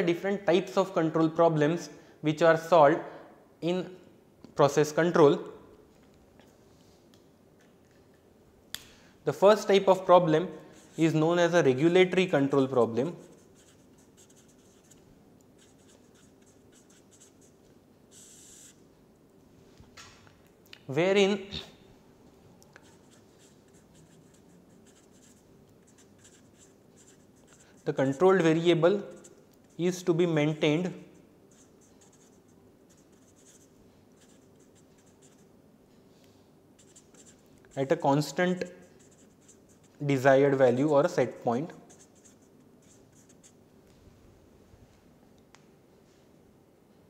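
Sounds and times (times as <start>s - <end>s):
marker scratching on paper: 9.9s - 15.0s, 15.6s - 18.8s, 22.8s - 35.5s, 36.8s - 43.6s.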